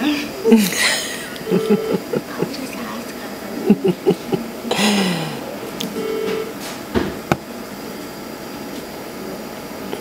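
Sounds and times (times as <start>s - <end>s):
medical equipment whirring: 1.2s - 8.0s.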